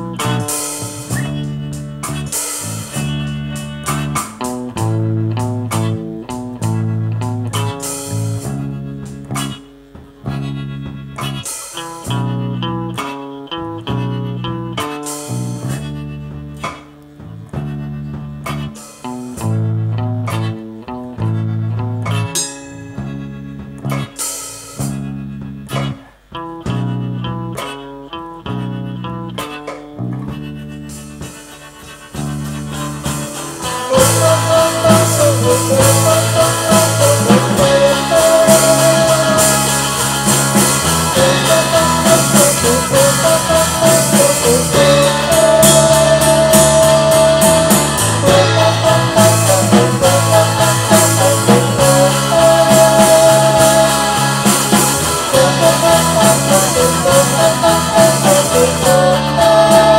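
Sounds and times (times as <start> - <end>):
instrumental band music: 0.0 - 59.9.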